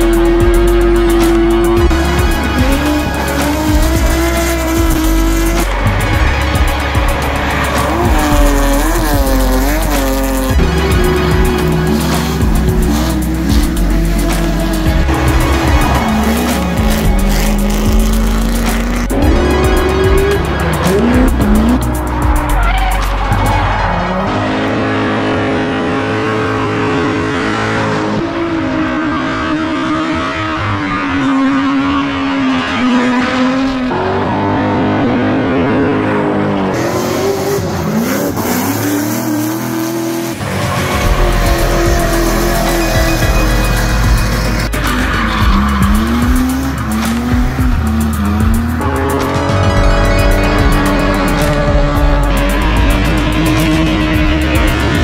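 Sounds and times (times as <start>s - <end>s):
car engines revving: 0.0s - 55.0s
music: 0.0s - 55.0s.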